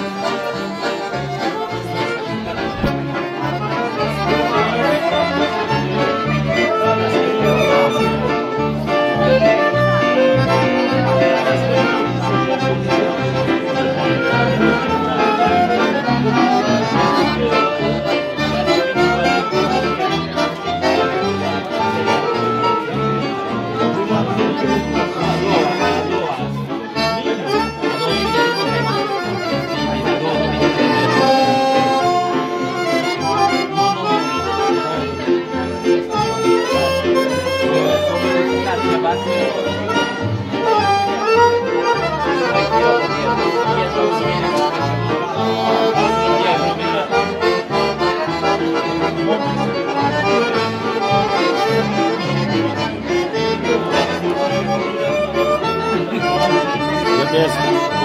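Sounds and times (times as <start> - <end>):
keyboard accompaniment with bass beat: 0.0 - 58.0
piano accordions playing melody: 0.0 - 58.0.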